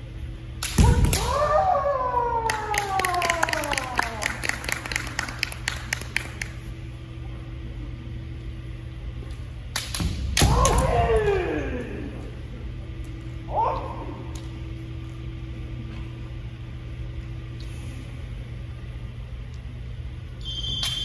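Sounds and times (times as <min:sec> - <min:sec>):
long falling shouts: 0:01.0 - 0:04.3.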